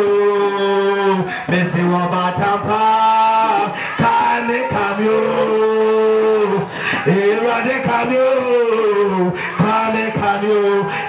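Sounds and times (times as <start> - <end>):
person singing through microphone: 0.0 - 11.0.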